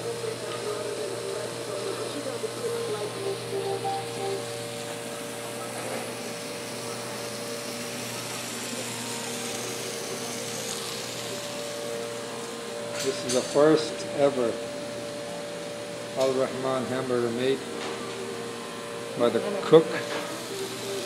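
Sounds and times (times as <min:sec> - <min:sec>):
kitchen equipment hum and hiss: 0:00.0 - 0:21.0.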